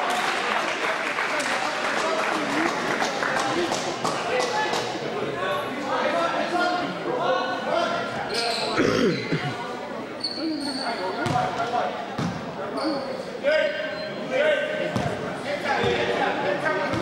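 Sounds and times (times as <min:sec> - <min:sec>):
sneaker squeaks: 0:08.3 - 0:09.4, 0:10.2 - 0:11.6, 0:12.2 - 0:13.3
basketball bouncing on gym floor: 0:11.2 - 0:11.5.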